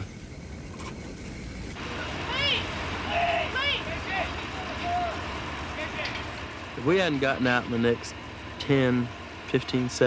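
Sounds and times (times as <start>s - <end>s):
steady rushing noise: 0.0s - 10.0s
short shouted voices: 1.8s - 6.2s.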